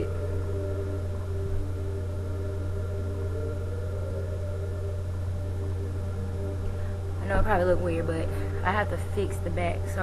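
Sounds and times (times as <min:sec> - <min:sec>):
faint music: 0:00.0 - 0:10.0
low electrical hum: 0:00.0 - 0:10.0.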